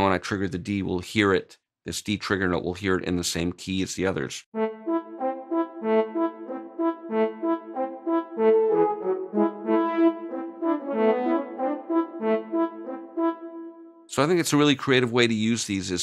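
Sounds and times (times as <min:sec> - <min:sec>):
french horns playing staccato: 0:04.6 - 0:13.8.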